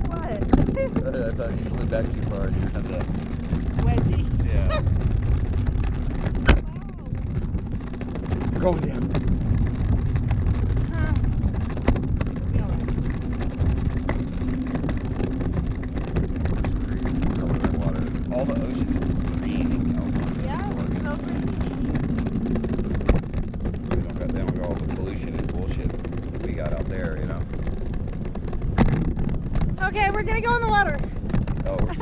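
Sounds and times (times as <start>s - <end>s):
low engine hum: 0.0s - 32.0s
wind rushing over microphone: 0.0s - 32.0s.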